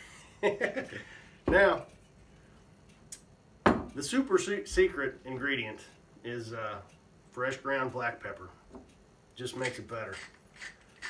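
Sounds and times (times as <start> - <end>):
glass bottle knocking on wood: 3.6 - 3.9.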